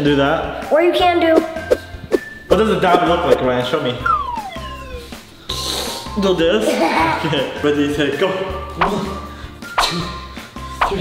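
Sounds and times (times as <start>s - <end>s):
background music with steady beat: 0.0s - 11.0s
falling whistle-like tone: 4.0s - 5.2s.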